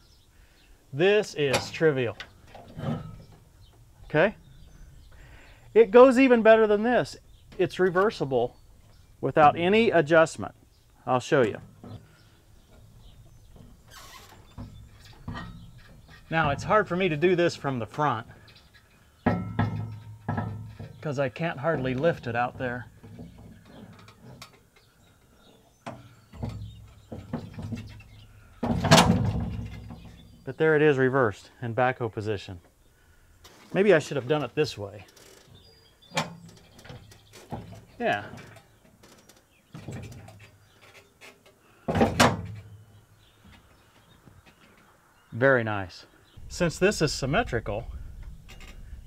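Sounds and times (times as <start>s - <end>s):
ringing metal knocks: 14.4s - 17.6s, 19.2s - 21.0s
loud metal clunk: 19.2s - 21.0s, 28.6s - 30.1s.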